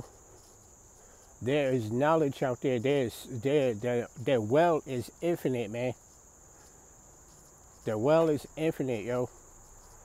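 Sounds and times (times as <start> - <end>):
insects chirring: 0.0 - 10.0
man speaking: 1.4 - 6.0, 7.8 - 9.3.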